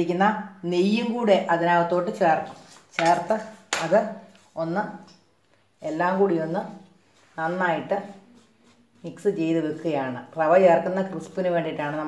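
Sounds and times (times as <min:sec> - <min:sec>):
dry flour being mixed: 0:05.8 - 0:12.0.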